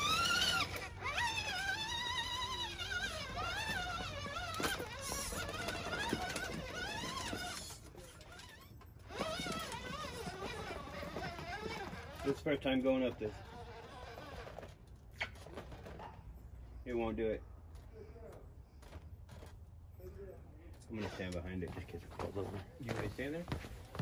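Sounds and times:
electric motor and gears whining: 0:00.0 - 0:14.8.

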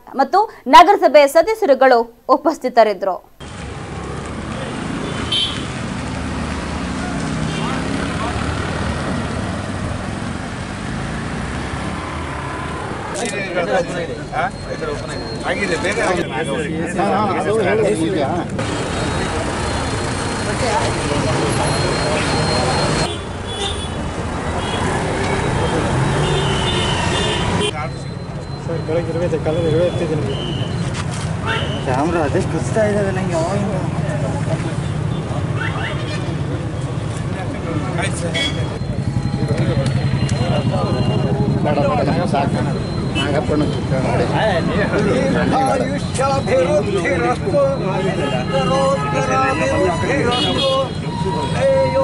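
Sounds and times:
people talking: 0:00.0 - 0:03.2, 0:13.2 - 0:19.5, 0:37.3 - 0:52.0
road traffic: 0:03.3 - 0:52.0
autorickshaw and motorbike engines: 0:03.4 - 0:52.0
voices: 0:12.0 - 0:23.2, 0:24.4 - 0:52.0
crowd chatter: 0:13.1 - 0:23.1, 0:33.2 - 0:52.0.

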